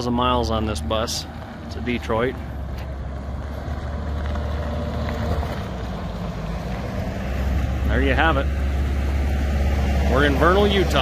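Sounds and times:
bus diesel engine rumbling past: 0.0s - 11.0s.

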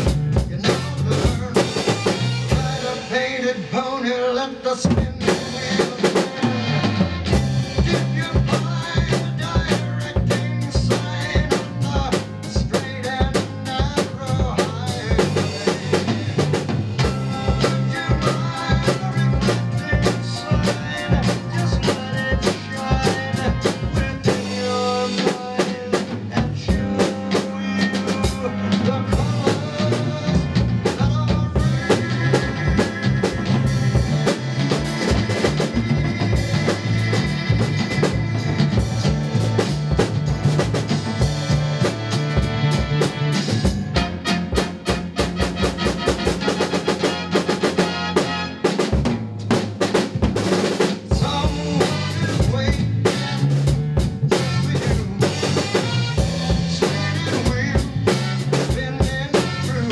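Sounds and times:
drum kit rock beat: 0.0s - 59.9s
live band playing: 0.0s - 59.9s.

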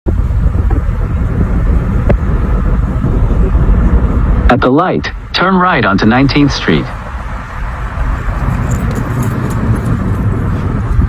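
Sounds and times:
car driving rumble: 0.1s - 11.0s.

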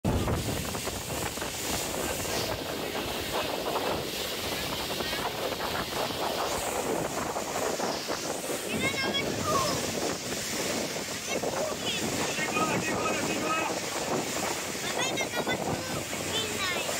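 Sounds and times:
wind buffeting microphone: 0.0s - 16.9s.

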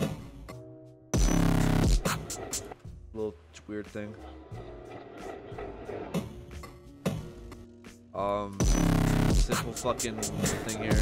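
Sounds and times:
grainy electronic texture: 4.1s - 6.4s, 9.0s - 11.0s.

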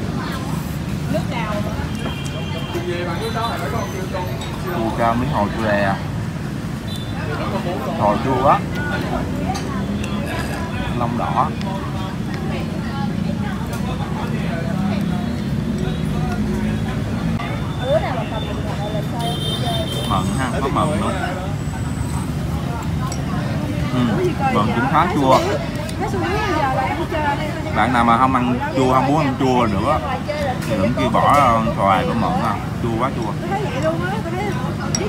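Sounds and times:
street traffic hum: 0.0s - 35.0s
voices talking: 0.0s - 35.0s.

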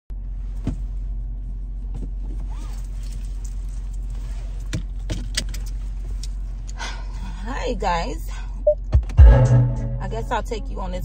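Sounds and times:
car engine running: 0.2s - 11.0s
seatbelt clicking and rattling: 2.0s - 6.4s.

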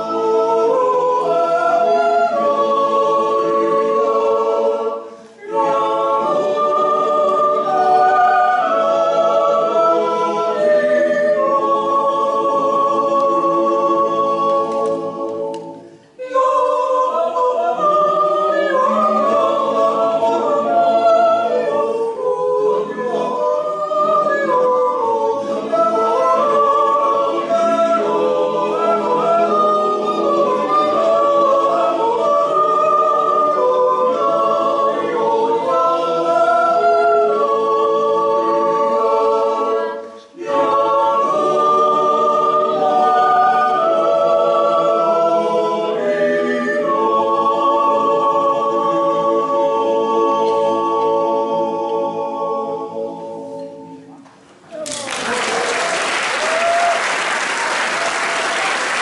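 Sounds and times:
choir singing a cappella: 0.0s - 59.0s.

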